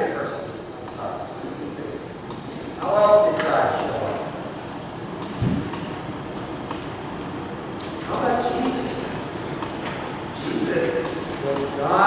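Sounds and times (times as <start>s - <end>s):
person speaking: 0.0s - 4.5s, 7.8s - 9.4s, 10.4s - 12.0s
room noise rumble: 0.0s - 12.0s.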